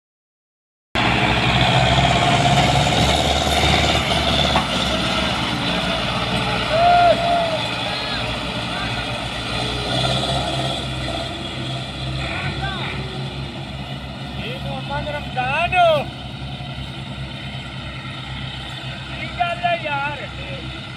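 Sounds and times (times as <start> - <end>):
diesel tractor engine under load: 1.0 - 20.9.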